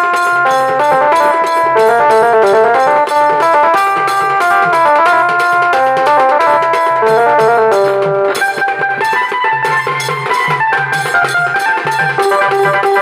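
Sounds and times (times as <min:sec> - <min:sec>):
electronic keyboard folk melody: 0:00.0 - 0:13.0
large stick-beaten drums: 0:00.0 - 0:13.0
small hand drum: 0:00.0 - 0:13.0.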